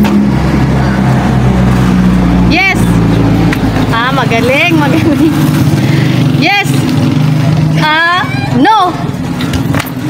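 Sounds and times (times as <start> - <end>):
motor vehicle engine hum: 0.0 - 10.0.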